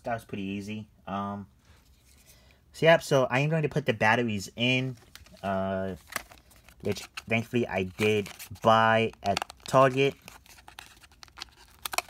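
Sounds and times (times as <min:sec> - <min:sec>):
battery pack crinkling and clicking: 0:04.9 - 0:12.0.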